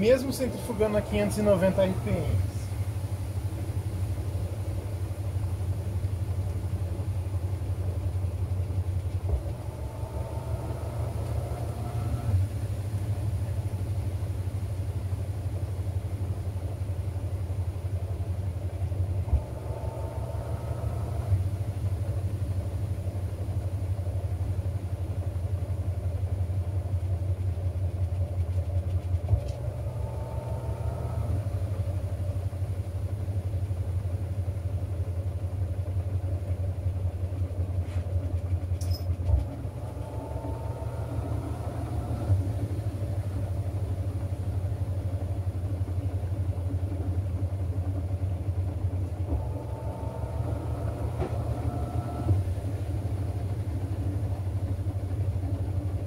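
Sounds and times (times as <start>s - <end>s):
faint rising whine: 0.0s - 8.2s, 9.1s - 14.9s, 19.2s - 23.0s, 29.4s - 33.0s, 49.3s - 55.1s
washing machine spinning hum: 0.0s - 56.0s.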